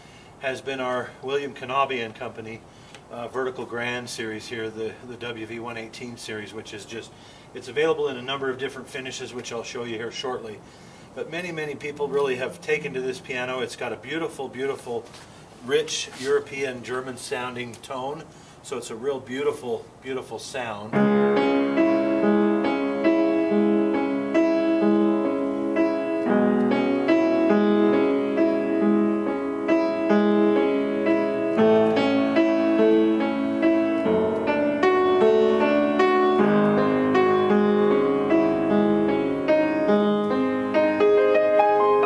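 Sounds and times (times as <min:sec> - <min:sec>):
upright piano playing: 0:11.3 - 0:14.8, 0:20.9 - 0:42.0.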